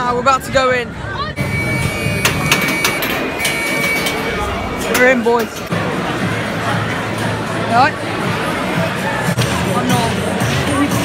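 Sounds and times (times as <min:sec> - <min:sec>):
turnstile mechanical clicks: 0:02.2 - 0:05.8.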